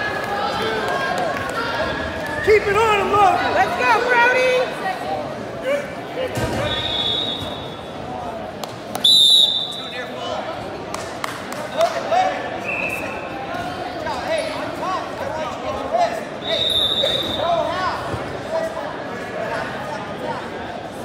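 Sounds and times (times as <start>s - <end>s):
referee's whistle blast: 6.6s - 7.8s, 9.0s - 10.1s.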